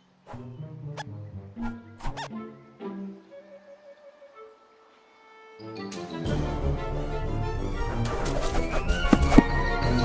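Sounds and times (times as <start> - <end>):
orchestral film score: 0.0 - 10.0.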